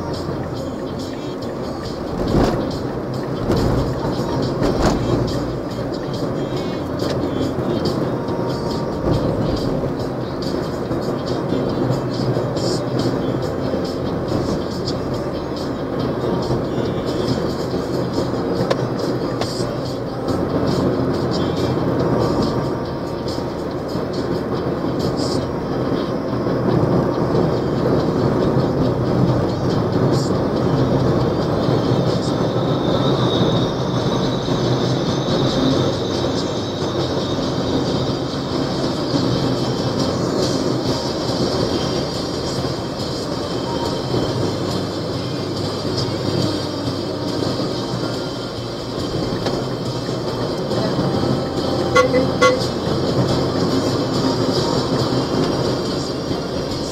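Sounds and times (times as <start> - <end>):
music playing: 0.0 - 56.9
road and engine noise inside vehicle: 0.0 - 56.9.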